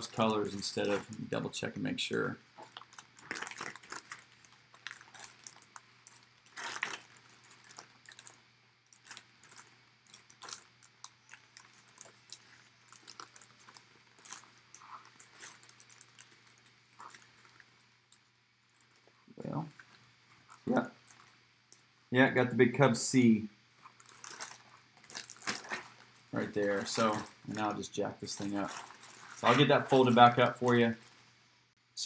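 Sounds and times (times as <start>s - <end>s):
plastic bag crinkling and rustling: 0.0s - 1.5s, 2.1s - 21.9s, 23.8s - 31.3s.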